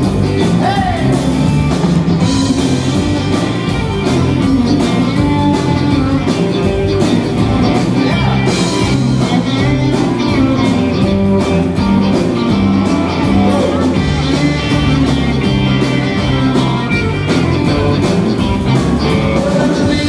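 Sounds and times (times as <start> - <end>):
rock band playing: 0.0 - 20.0.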